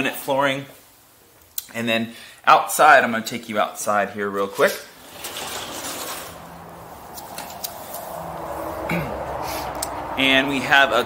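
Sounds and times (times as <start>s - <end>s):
sliding glass door rolling open: 4.9s - 9.6s.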